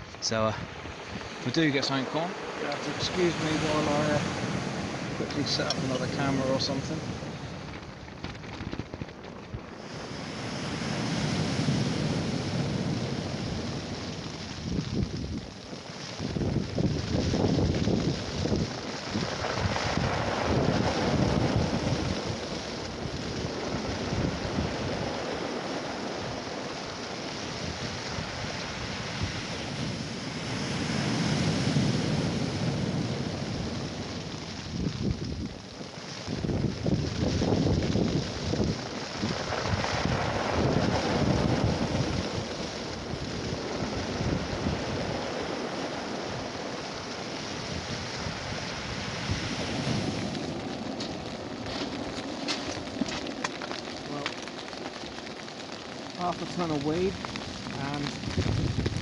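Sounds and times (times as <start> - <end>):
wind rushing over microphone: 0.0 - 59.0
waves breaking on beach: 0.7 - 7.8, 9.8 - 59.0.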